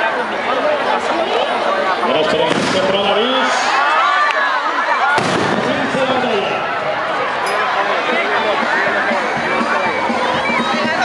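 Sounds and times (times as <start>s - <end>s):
crowd shouting: 0.0s - 11.0s
sharp bang: 5.2s - 6.2s.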